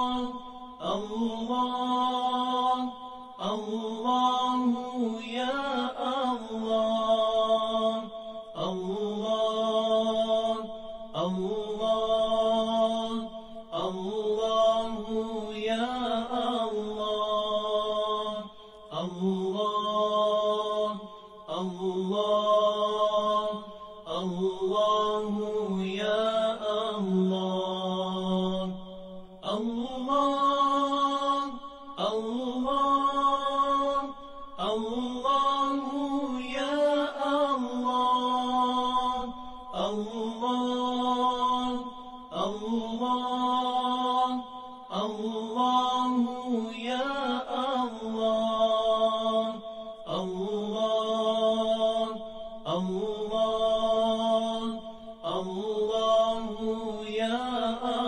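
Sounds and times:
person chanting: 0:00.0 - 0:58.0
breaths: 0:18.5 - 0:18.9, 0:21.0 - 0:21.5.

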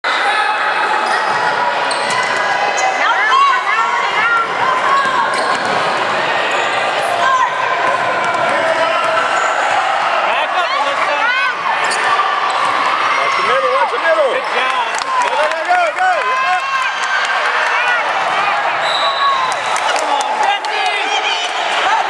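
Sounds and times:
spectators talking and shouting: 0:00.0 - 0:22.0
sneakers squeaking on hardwood: 0:01.0 - 0:02.4, 0:04.9 - 0:05.8
basketball bouncing: 0:04.9 - 0:06.0.

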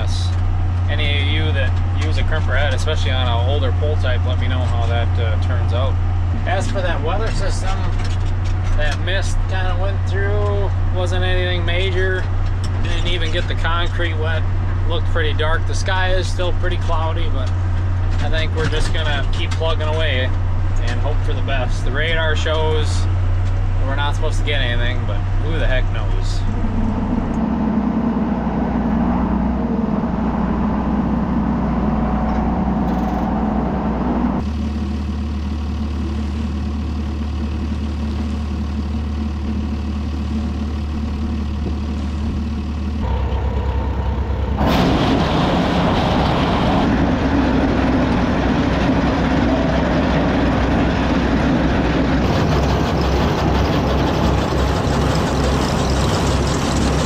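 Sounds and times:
tractor engines running: 0:00.0 - 0:57.0
conveyor running: 0:52.2 - 0:57.0.

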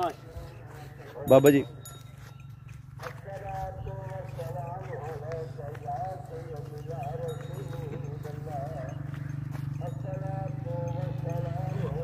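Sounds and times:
cattle hooves on dirt: 0:00.0 - 0:12.0
indistinct voices: 0:00.0 - 0:12.0.

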